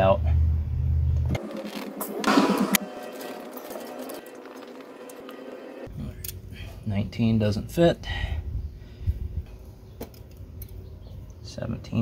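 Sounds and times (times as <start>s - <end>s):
low hum: 0.3s - 7.3s.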